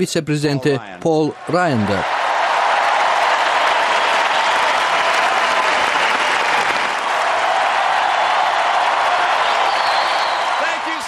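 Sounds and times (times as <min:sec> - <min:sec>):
crowd applauding: 0:01.3 - 0:11.0.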